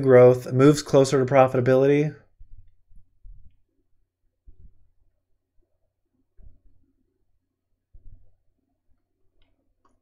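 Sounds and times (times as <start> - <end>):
man's voice: 0.0 - 2.3.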